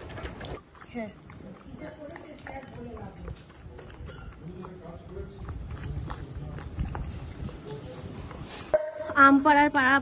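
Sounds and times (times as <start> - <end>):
dog chewing and licking: 0.4 - 8.4.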